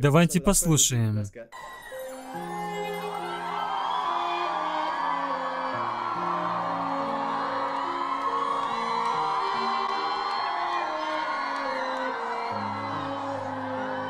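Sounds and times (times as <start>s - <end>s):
crowd whooping and cheering: 1.6s - 14.0s
slow piano and strings ballad: 1.6s - 14.0s.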